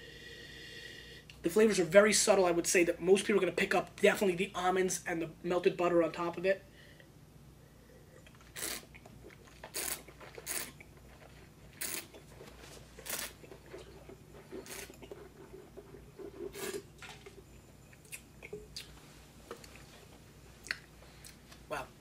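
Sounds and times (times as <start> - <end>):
sucking and swishing wine in mouth: 8.1 - 16.9.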